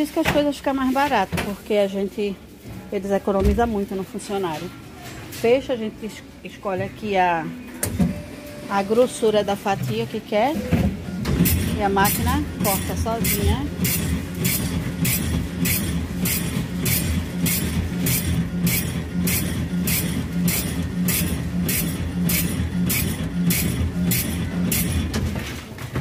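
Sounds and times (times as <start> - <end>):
bread slicing machine motor hum: 10.9 - 26.0.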